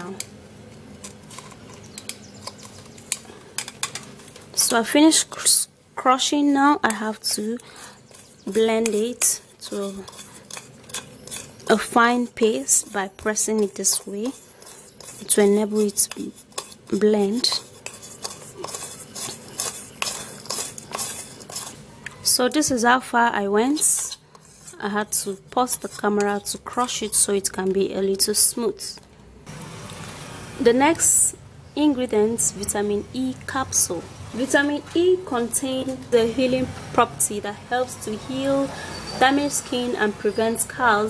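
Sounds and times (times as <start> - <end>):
metal spoon crushing tablets: 1.0 - 4.5, 8.0 - 11.9, 12.8 - 21.8.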